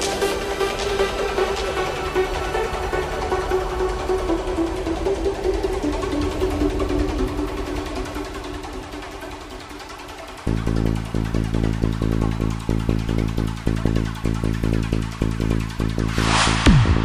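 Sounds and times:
low bass: 10.4s - 17.0s.

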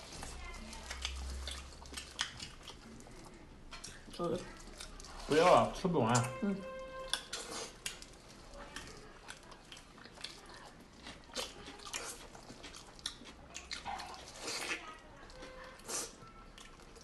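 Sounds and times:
chewing and mouth smacks: 0.0s - 5.3s, 7.1s - 17.0s.

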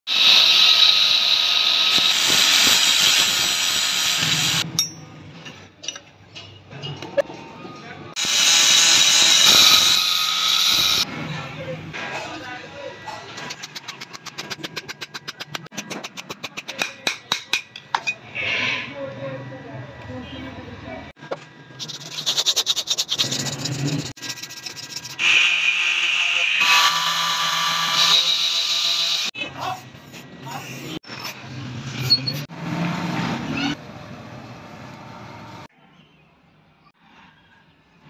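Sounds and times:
angle grinder grinding steel: 0.1s - 4.6s, 8.2s - 11.1s, 22.0s - 29.3s.

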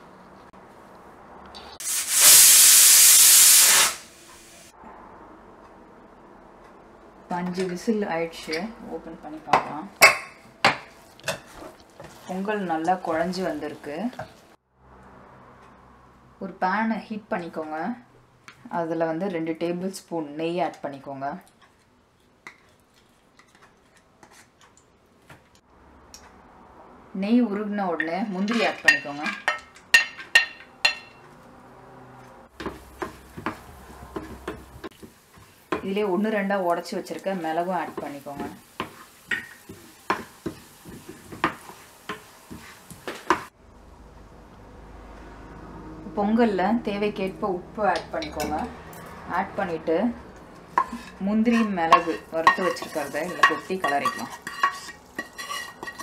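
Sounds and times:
pressure cooker whistling: 1.8s - 4.1s
ghee crackling in a frying pan: 7.7s - 14.6s, 32.5s - 43.6s, 47.9s - 56.0s.

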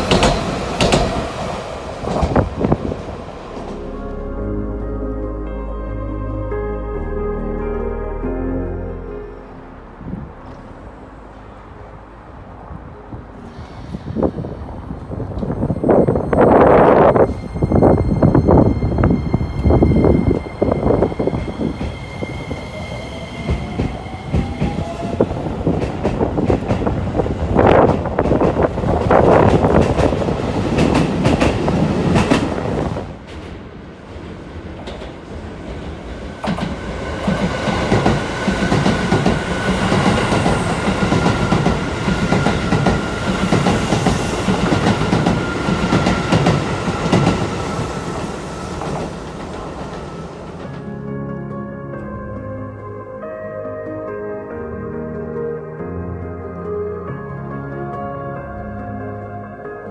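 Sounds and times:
wheels clacking over rail joints: 0.0s - 3.9s, 23.4s - 50.9s
braking train high whine: 0.0s - 59.4s.

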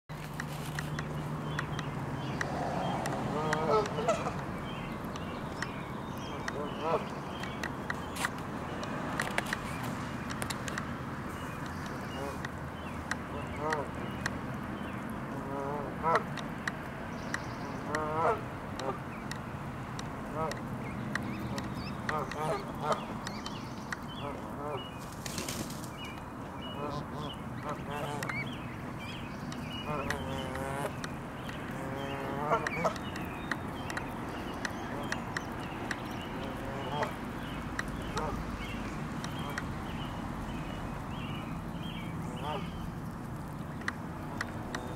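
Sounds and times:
goslings peeping: 0.9s - 8.3s, 11.3s - 12.5s, 20.3s - 24.9s, 26.6s - 44.9s
geese calling: 2.4s - 4.4s, 31.8s - 33.2s
faint clicks: 29.4s - 40.0s.

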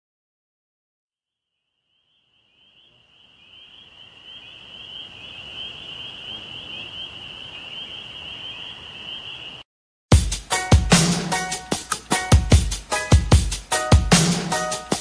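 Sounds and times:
high chirring animal chorus: 2.7s - 9.6s.

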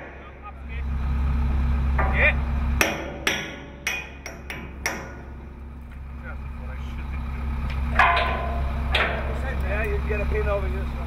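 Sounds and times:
hammer striking steel pin: 2.0s - 5.4s.

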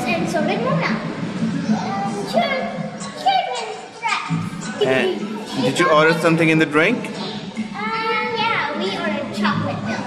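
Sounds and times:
girls speaking: 0.0s - 6.4s, 7.1s - 10.0s.

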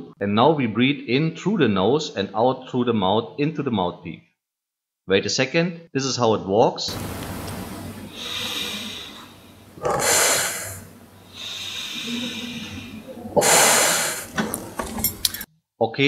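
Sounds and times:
man breathing into mouthpiece: 8.1s - 14.4s.

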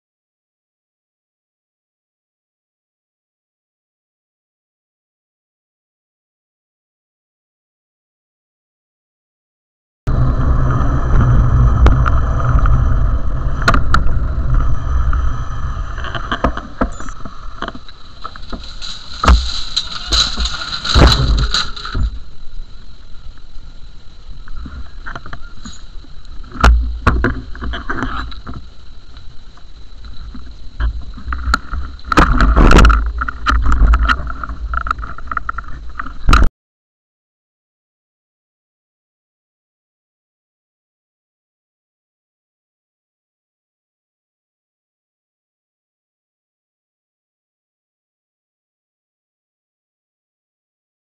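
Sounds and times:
low rumble: 10.1s - 36.0s
traffic cones knocked over: 18.2s - 22.3s.

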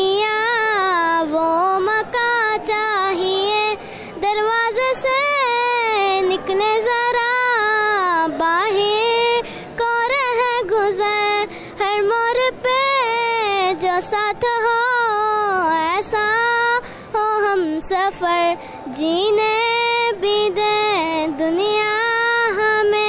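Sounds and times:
girl singing unaccompanied: 0.0s - 23.0s.

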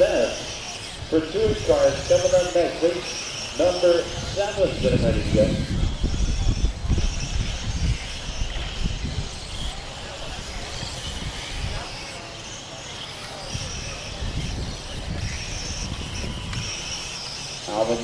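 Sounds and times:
wind buffeting microphone: 0.0s - 12.2s, 13.4s - 18.0s
rc car motors whining: 0.0s - 18.0s.

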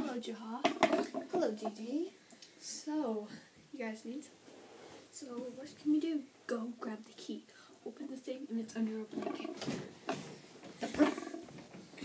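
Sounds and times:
low background noise: 0.0s - 12.0s.

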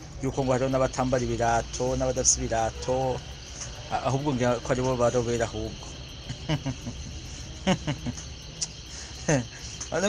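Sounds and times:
man speaking syllable: 0.2s - 3.2s, 3.9s - 5.8s.

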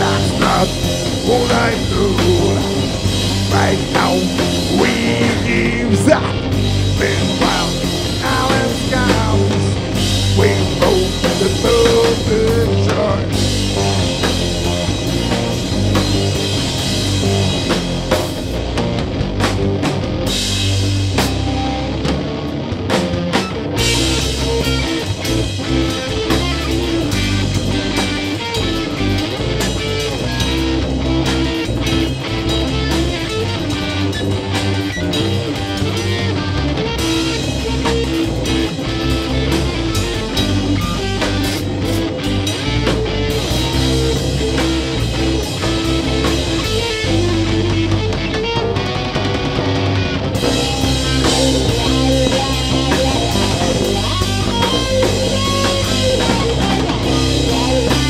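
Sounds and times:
drum kit: 0.0s - 58.0s
electric guitar: 0.0s - 58.0s.

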